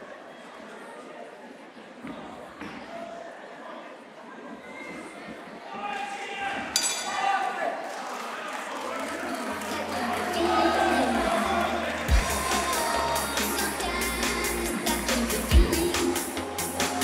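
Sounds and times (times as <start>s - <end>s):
crowd noise: 0.0s - 17.0s
music with heavy bass beat: 12.0s - 17.0s.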